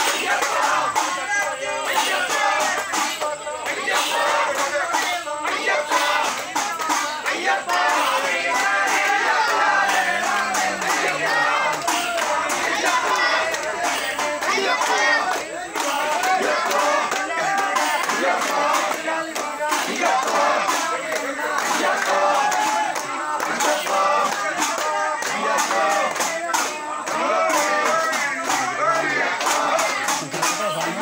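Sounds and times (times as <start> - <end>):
crowd singing and calling out: 0.0 - 31.0.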